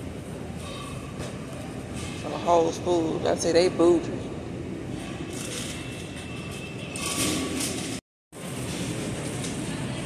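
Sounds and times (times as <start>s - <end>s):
grocery store background noise: 0.0s - 10.0s
shopping cart wheels rumbling: 5.3s - 10.0s.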